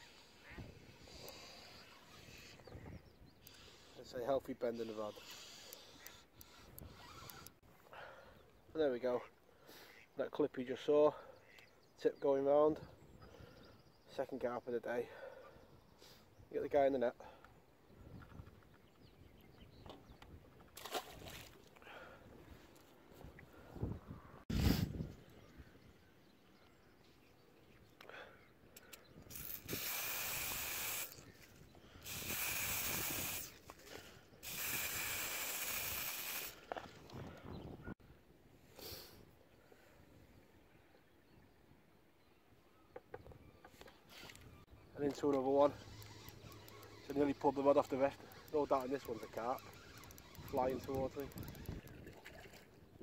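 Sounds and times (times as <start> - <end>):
aerosol spray hissing: 29.5 - 31.2, 32.0 - 33.5, 34.4 - 36.6.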